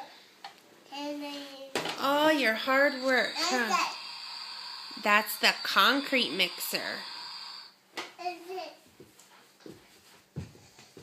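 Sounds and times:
hands and knees thumping on carpet: 9.0 - 11.0.

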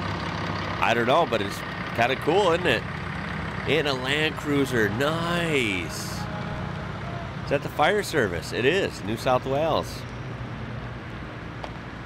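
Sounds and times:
truck diesel engines rumbling: 0.0 - 12.0.

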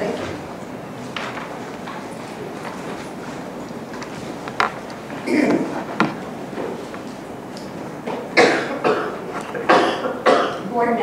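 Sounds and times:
meeting room background noise: 0.0 - 11.0.

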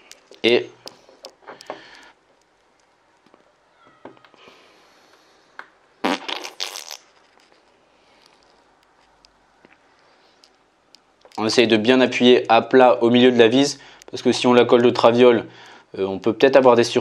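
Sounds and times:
faint clicks and handling: 0.0 - 4.4, 7.2 - 11.5
glue squeezing pulses: 6.0 - 7.2.

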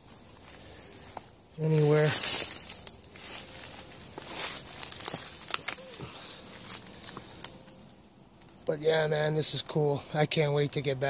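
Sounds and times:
footsteps through leafy undergrowth: 0.0 - 8.7.

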